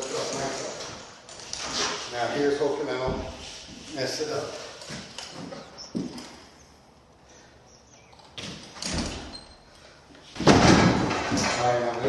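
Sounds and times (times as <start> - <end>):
drywall board knocks and scrapes: 10.4 - 11.6
drywall board thumping: 10.4 - 11.6.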